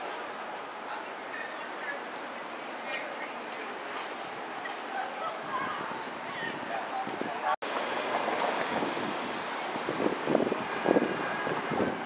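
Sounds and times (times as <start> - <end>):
passers-by talking: 0.0 - 12.0
traffic hum: 0.0 - 12.0.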